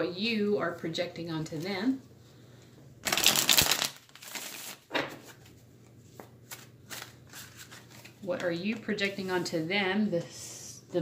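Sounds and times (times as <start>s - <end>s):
cards being shuffled: 3.0s - 8.9s.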